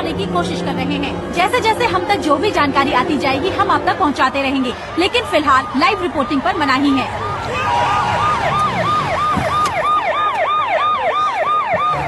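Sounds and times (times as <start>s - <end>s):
emergency vehicle siren: 1.6s - 12.0s.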